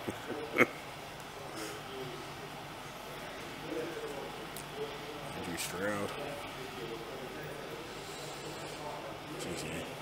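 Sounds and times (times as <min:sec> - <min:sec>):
indistinct voices murmuring: 0:00.0 - 0:10.0.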